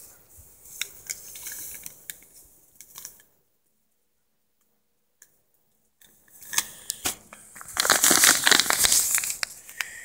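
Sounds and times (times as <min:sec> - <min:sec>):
dense crackling: 0:06.9 - 0:09.9
plastic packet crinkling: 0:07.6 - 0:09.8.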